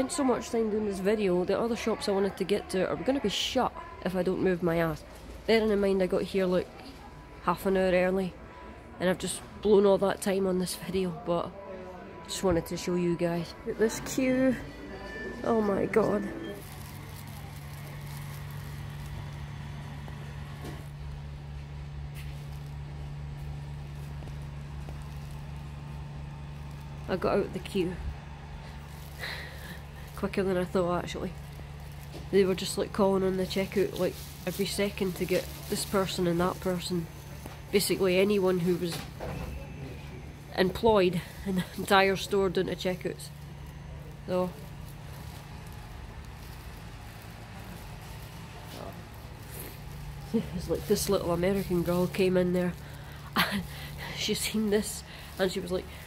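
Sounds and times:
shop noise: 0:00.0 - 0:56.0
steady low hum: 0:03.8 - 0:56.0.

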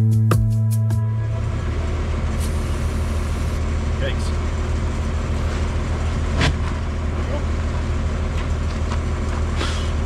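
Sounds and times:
music: 0:00.0 - 0:01.5
engine low rumble: 0:00.0 - 0:10.0.

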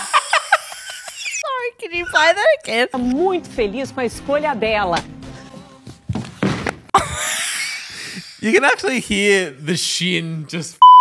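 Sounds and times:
quiet background music: 0:01.9 - 0:06.4
shin knocking into fixture: 0:06.1 - 0:07.0.

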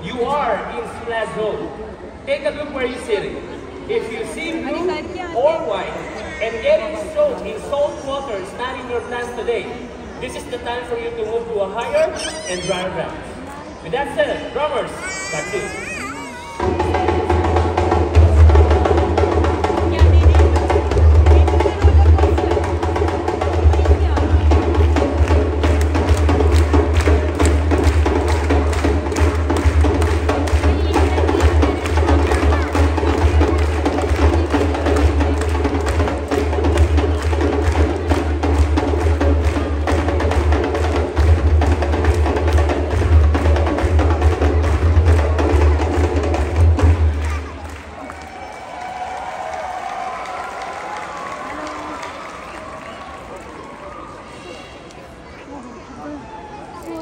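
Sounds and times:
hand drums playing a fast beat: 0:15.5 - 0:47.6.

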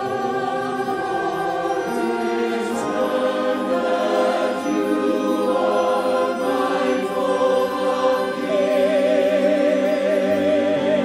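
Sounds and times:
choir singing an anthem: 0:00.0 - 0:11.0
musical accompaniment: 0:00.0 - 0:11.0.

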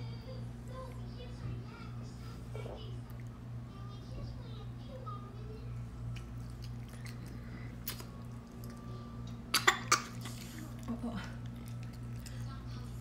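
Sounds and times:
faint eating sounds: 0:00.0 - 0:13.0
steady low hum: 0:00.0 - 0:13.0
child coughing: 0:09.5 - 0:10.4.

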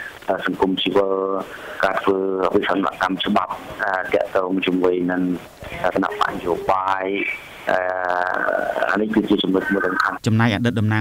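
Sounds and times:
person talking: 0:00.3 - 0:11.0.

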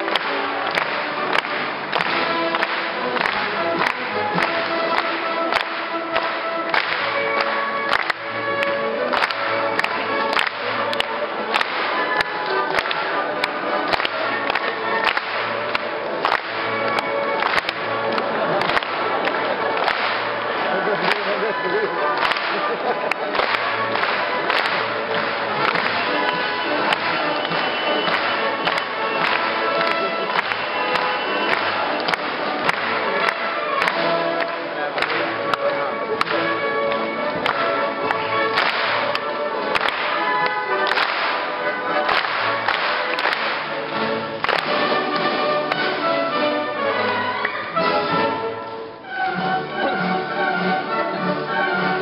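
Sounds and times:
sharp claps close to microphone: 0:00.0 - 0:48.8
audience clapping: 0:00.0 - 0:52.0
orchestra playing: 0:00.0 - 0:52.0.

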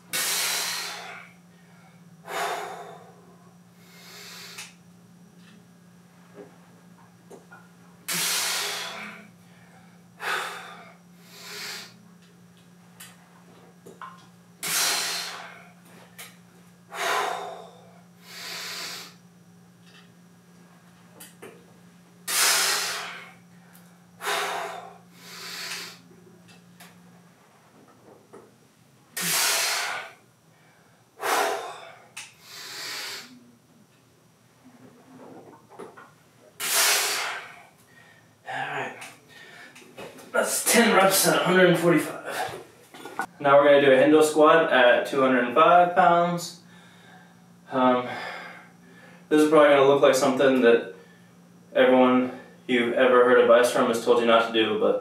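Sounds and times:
man breathing hard: 0:00.1 - 0:04.8, 0:08.1 - 0:12.0, 0:14.6 - 0:15.8, 0:16.9 - 0:19.2, 0:22.3 - 0:26.1, 0:29.2 - 0:33.4, 0:36.6 - 0:38.4, 0:39.3 - 0:39.9, 0:48.0 - 0:49.3.

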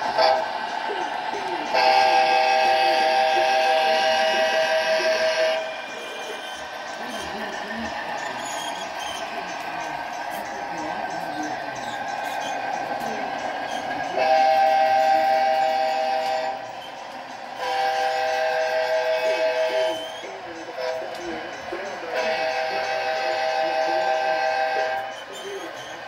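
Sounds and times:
diesel locomotive engine running: 0:00.0 - 0:26.0
air horn blasts: 0:14.2 - 0:16.6, 0:17.6 - 0:19.9, 0:22.2 - 0:25.0.

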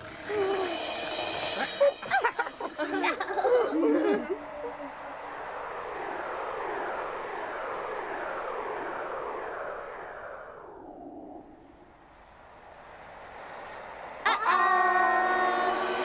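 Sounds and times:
windmill whooshing: 0:00.0 - 0:16.0.

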